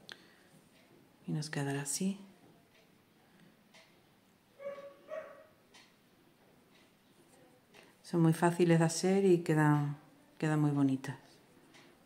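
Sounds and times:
dog barking: 4.6s - 5.6s.

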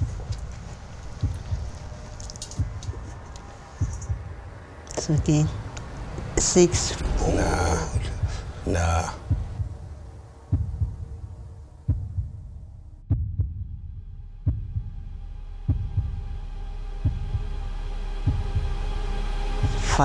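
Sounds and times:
low heartbeat-like thumps: 0.0s - 20.0s
droning tone: 6.8s - 20.0s.

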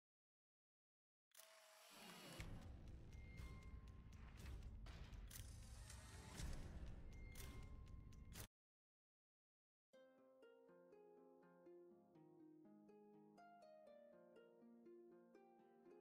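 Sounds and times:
scattered clicks: 2.4s - 6.5s, 7.1s - 8.5s
low rumbling music: 2.4s - 8.4s.

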